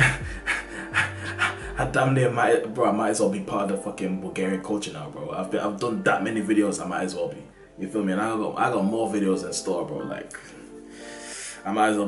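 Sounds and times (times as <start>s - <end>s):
man laughing breathily: 0.0s - 1.8s
deep bass line: 0.0s - 2.2s
background music with steady beat: 0.0s - 12.0s.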